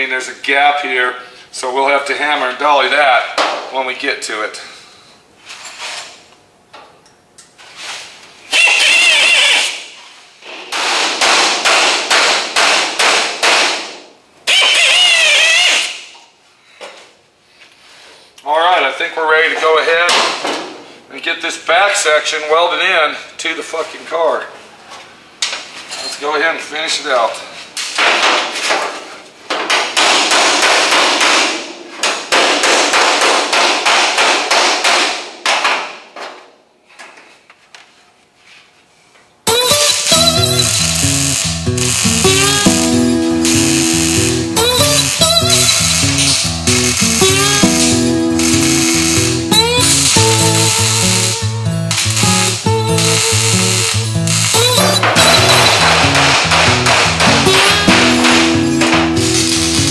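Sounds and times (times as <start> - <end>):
background music with beat: 39.5 - 59.9
welder crackling hiss: 39.6 - 59.9.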